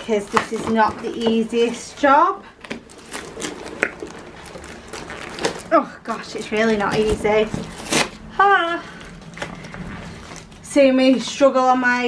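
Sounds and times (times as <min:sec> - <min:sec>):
cardboard boxes scraping and rustling: 0:02.8 - 0:05.8.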